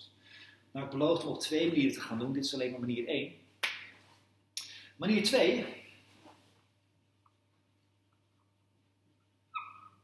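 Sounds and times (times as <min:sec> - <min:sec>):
faint steady hum: 0:00.0 - 0:10.0
whiteboard marker squeaking: 0:09.5 - 0:10.0.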